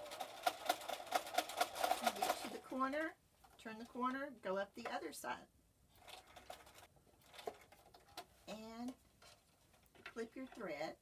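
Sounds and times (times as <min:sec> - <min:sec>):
sewing machine motor hum: 0:00.0 - 0:02.6.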